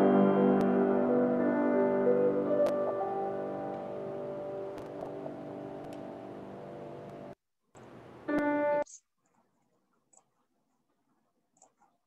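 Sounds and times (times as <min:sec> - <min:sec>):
grand piano chord ringing: 0:00.0 - 0:07.3.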